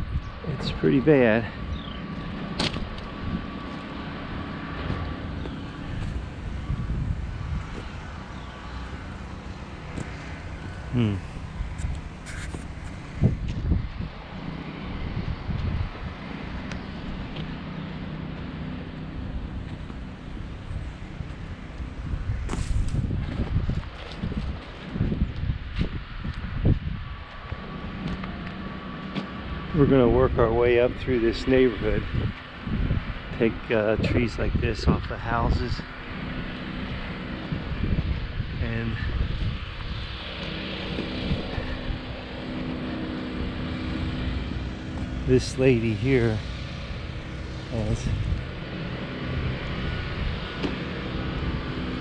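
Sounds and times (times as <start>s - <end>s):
wind on microphone: 0.0s - 17.6s, 19.3s - 28.8s, 29.6s - 52.0s
low mechanical hum: 0.0s - 52.0s.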